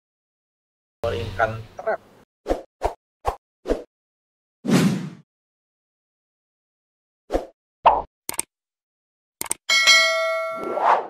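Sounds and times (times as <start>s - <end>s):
quick clicks: 8.3s - 8.5s, 9.4s - 9.6s
ringing metallic ding: 9.7s - 10.7s.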